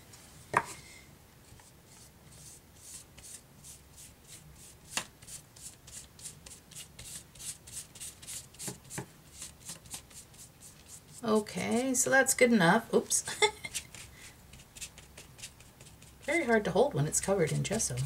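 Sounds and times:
paintbrush scrubbing on paper: 1.9 - 11.5, 13.6 - 18.0.

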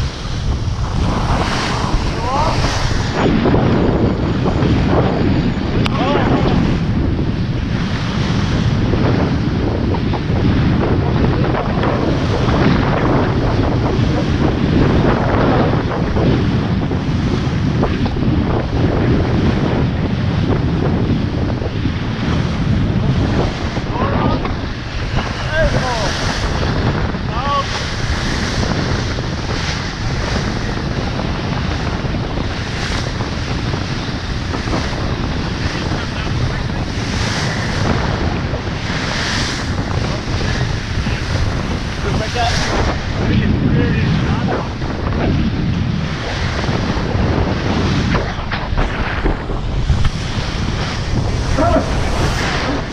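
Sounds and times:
water rushing along hull: 0.0 - 52.9
wind buffeting microphone: 0.0 - 52.9.

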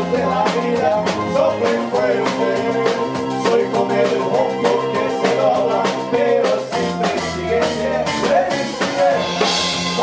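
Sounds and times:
drum kit beat: 0.0 - 10.0
electric guitar: 0.0 - 10.0
keyboard: 0.0 - 10.0.

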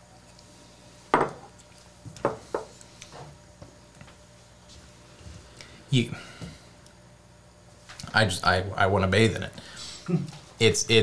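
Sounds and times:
glasses knocking on bar top: 1.1 - 1.4.

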